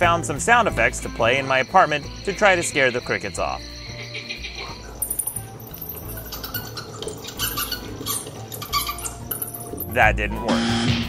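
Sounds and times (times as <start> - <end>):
background music: 0.0 - 11.0
frog sounds: 0.5 - 9.5
squeaky bat calls: 0.5 - 10.0.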